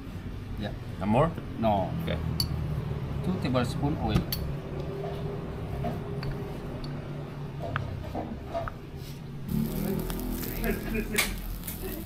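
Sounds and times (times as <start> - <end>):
skewers sizzling on grill: 9.0 - 12.0.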